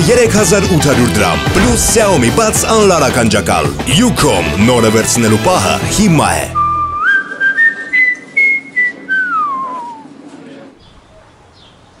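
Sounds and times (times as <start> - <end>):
person whistling: 6.5 - 10.1.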